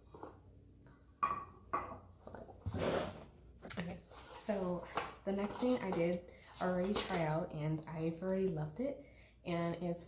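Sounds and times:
woman speaking: 3.7 - 10.0.

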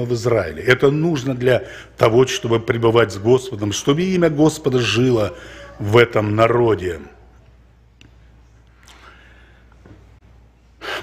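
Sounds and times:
man speaking into a microphone: 0.0 - 7.2
faint breath drawn in: 8.7 - 10.0.

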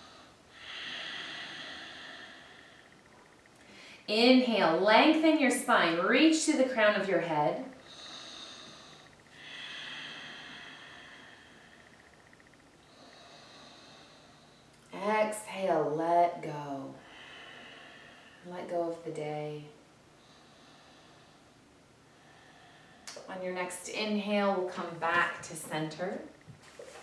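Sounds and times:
woman speaking: 4.1 - 7.7, 14.9 - 17.0, 18.5 - 19.7, 23.2 - 26.3
woman breathing out: 7.9 - 12.2.

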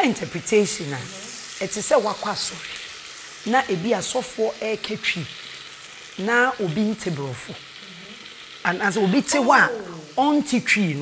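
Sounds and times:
woman talking: 0.0 - 2.8, 3.5 - 5.3, 6.2 - 11.0
food sizzling in a pan: 0.0 - 11.0.

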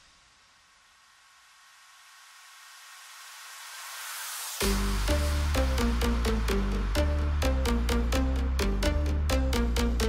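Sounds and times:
white-noise sweep: 0.0 - 10.0.

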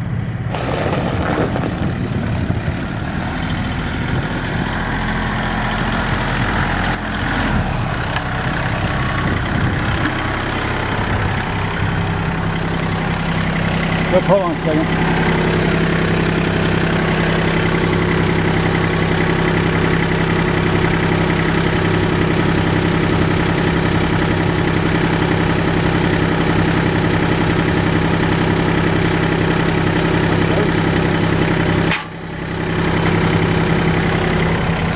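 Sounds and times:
tractor diesel engine idling: 0.0 - 34.9.

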